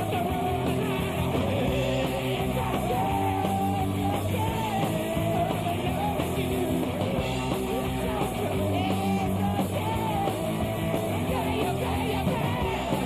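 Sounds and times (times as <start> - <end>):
punk rock band playing live: 0.0 - 13.0.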